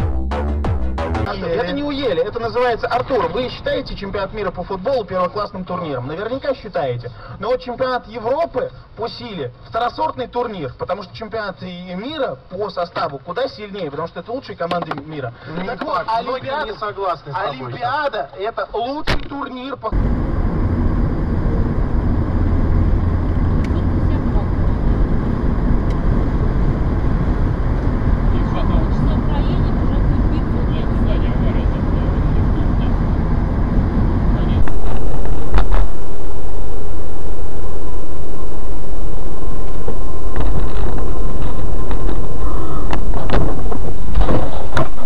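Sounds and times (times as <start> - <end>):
car road and engine noise: 1.4 - 5.3, 19.9 - 45.0
loud rough noise: 19.9 - 45.0.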